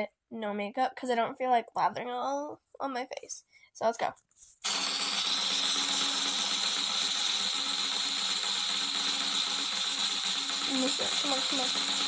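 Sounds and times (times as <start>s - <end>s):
spinner wheel ratcheting tick: 4.7s - 12.0s.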